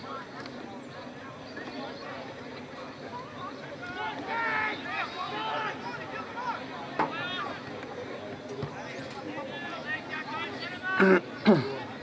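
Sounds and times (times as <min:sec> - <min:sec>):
players shouting: 0:03.8 - 0:07.6.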